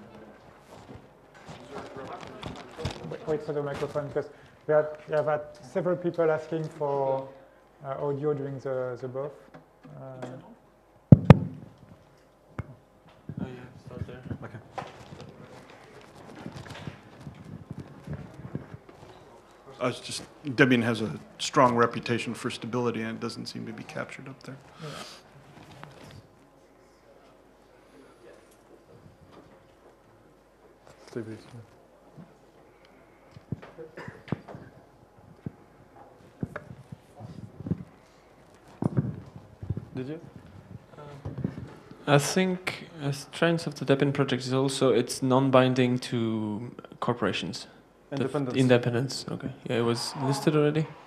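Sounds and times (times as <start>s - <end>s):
microphone handling knocks: 11.1s - 12.0s, 38.7s - 41.8s
person speaking: 19.6s - 25.2s, 48.1s - 51.0s.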